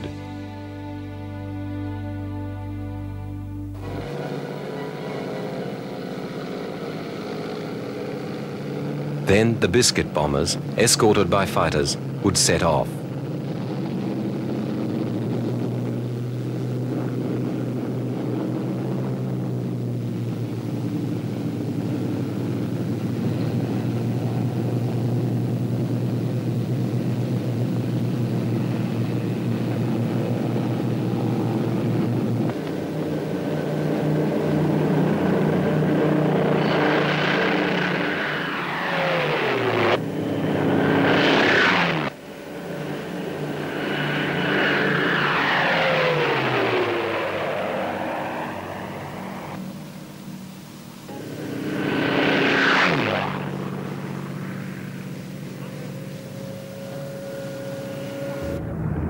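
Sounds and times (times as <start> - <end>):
planes passing close by: 0.0 - 59.0
propeller aircraft engines droning: 0.0 - 59.0.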